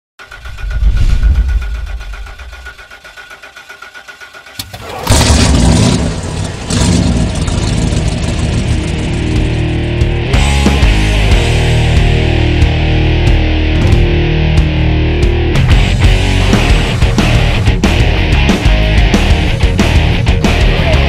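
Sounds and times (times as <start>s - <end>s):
engine starting and idling: 0.2s - 9.8s
heavy rock music: 5.2s - 21.0s.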